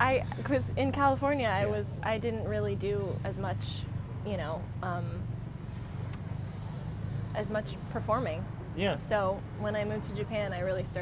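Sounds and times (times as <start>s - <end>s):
insect trilling: 0.0s - 11.0s
steady low hum: 0.0s - 11.0s.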